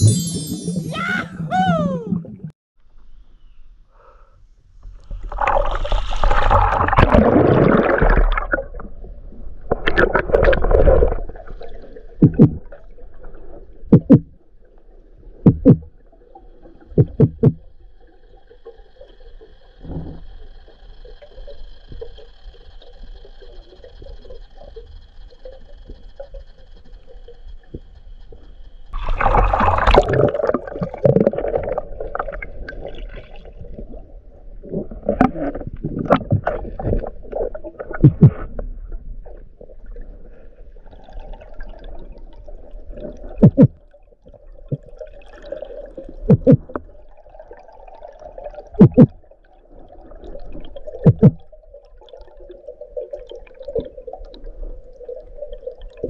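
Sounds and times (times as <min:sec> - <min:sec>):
faint steady whine: 0:17.6 - 0:32.7
water rushing and gurgling: 0:29.0 - 0:37.0.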